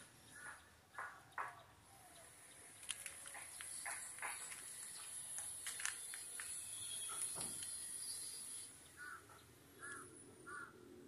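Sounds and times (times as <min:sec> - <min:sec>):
steady high hiss: 0:02.2 - 0:09.1.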